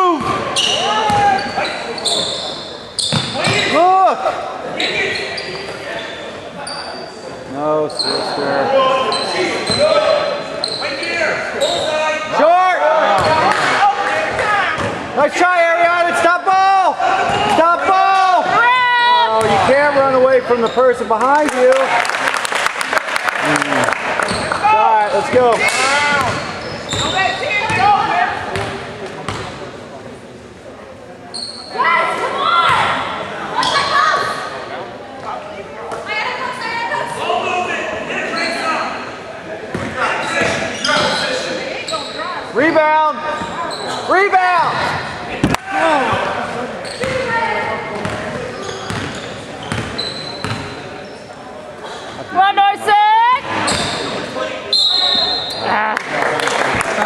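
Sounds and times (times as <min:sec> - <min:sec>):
spectators talking and shouting: 0:00.0 - 0:22.2, 0:22.8 - 0:57.0
basketball bouncing on court: 0:01.1 - 0:01.4, 0:03.1 - 0:03.6, 0:26.1 - 0:27.9, 0:28.5 - 0:29.5, 0:47.0 - 0:47.3, 0:48.0 - 0:48.3, 0:48.9 - 0:50.7.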